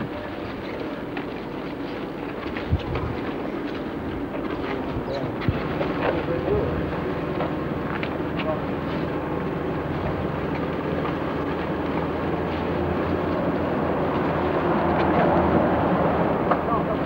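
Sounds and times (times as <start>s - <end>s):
outdoor rumble: 0.0s - 17.0s.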